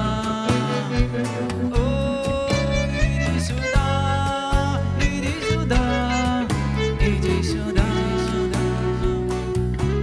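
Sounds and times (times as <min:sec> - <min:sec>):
acoustic guitar: 0:00.0 - 0:10.0
bass guitar: 0:00.0 - 0:10.0
drums: 0:00.0 - 0:10.0
electric guitar bending notes: 0:00.0 - 0:10.0.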